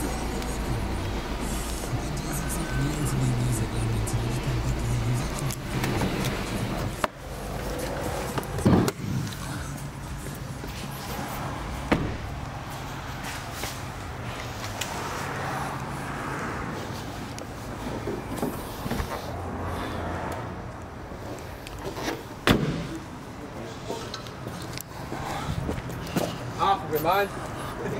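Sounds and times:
car engine idling: 0:00.0 - 0:15.0
sharp knocks: 0:11.9 - 0:12.4.

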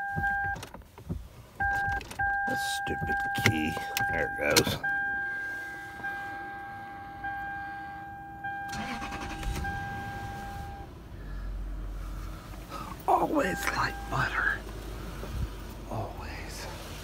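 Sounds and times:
car engine cranking and idling: 0:00.0 - 0:17.0.

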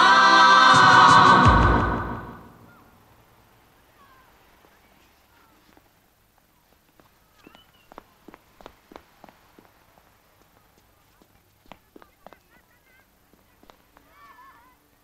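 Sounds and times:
choir singing held chords: 0:00.0 - 0:02.9
faint chirps: 0:07.2 - 0:08.2.

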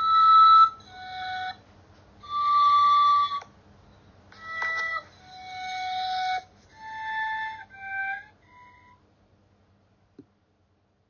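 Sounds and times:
recorder playing slow tune: 0:00.0 - 0:01.6, 0:02.2 - 0:03.6, 0:04.3 - 0:09.0.

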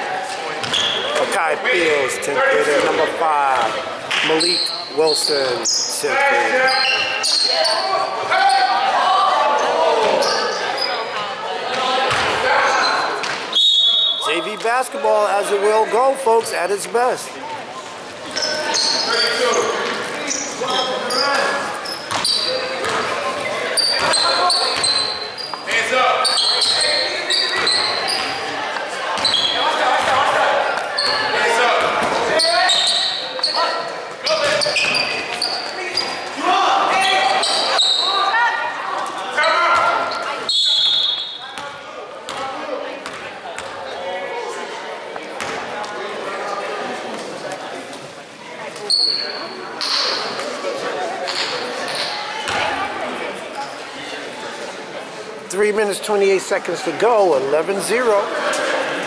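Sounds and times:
voices shouting in a gym: 0:00.0 - 0:59.0
sneakers squeaking on hardwood: 0:00.6 - 0:01.2, 0:03.6 - 0:08.7, 0:18.2 - 0:28.5, 0:29.1 - 0:38.2, 0:48.8 - 0:50.5
short whistle: 0:13.5 - 0:14.4.

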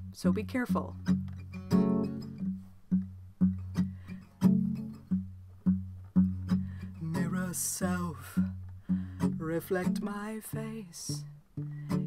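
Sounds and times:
acoustic guitar strumming chords: 0:00.0 - 0:12.0.

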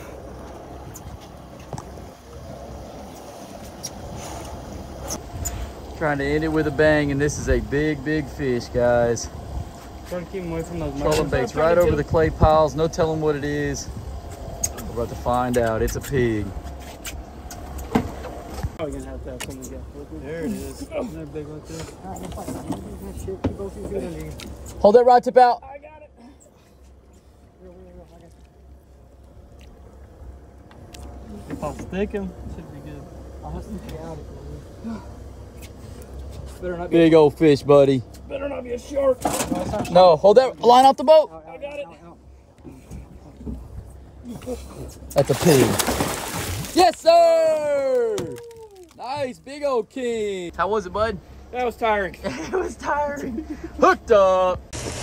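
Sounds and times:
outboard engines rumbling: 0:00.0 - 0:55.0
water noise: 0:26.8 - 0:41.2, 0:42.2 - 0:52.0.

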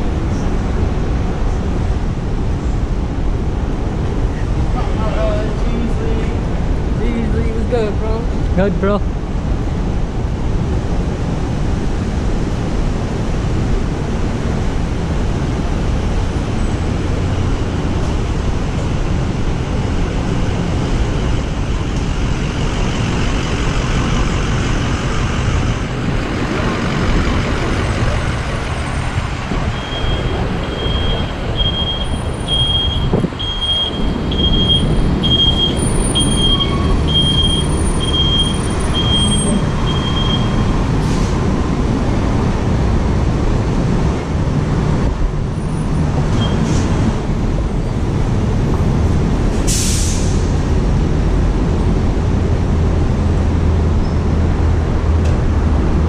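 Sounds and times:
traffic rumble: 0:00.0 - 0:56.0
high evenly spaced beeps: 0:29.8 - 0:40.7.

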